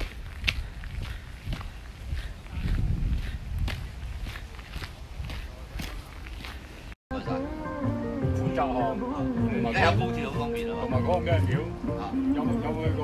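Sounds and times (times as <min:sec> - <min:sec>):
footsteps through brush: 0:00.0 - 0:07.0.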